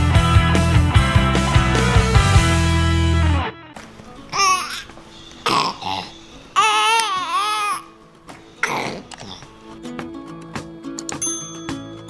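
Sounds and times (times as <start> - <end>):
baby crying: 4.3 - 8.0, 8.6 - 9.6.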